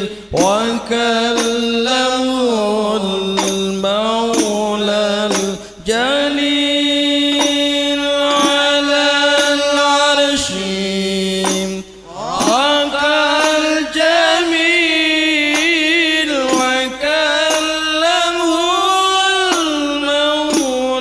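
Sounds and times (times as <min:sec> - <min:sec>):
voices chanting devotional verse: 0:00.0 - 0:21.0.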